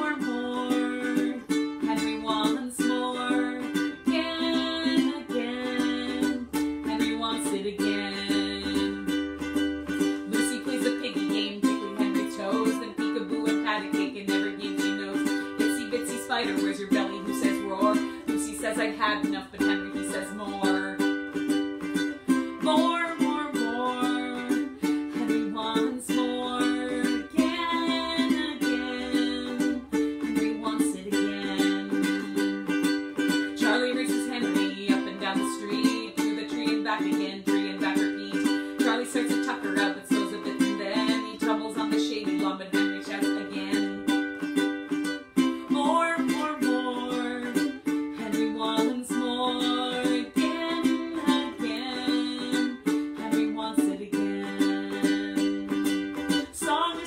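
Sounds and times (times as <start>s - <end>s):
strummed stringed instrument: 0.0s - 57.0s
woman singing: 0.0s - 57.0s.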